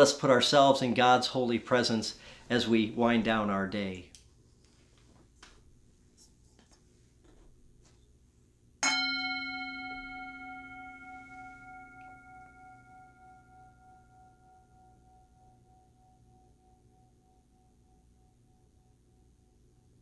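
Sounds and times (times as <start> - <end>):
singing bowl ringing: 8.8 - 20.0.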